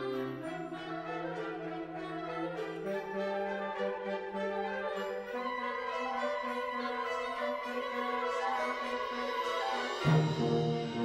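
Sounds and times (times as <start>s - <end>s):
brass sustained chords: 0.0s - 11.0s.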